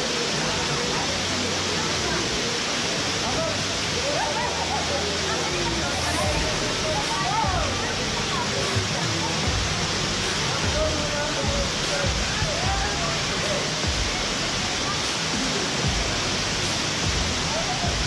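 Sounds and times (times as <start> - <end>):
faint voices: 0.0 - 18.0
waterfall pouring into pool: 0.0 - 18.0.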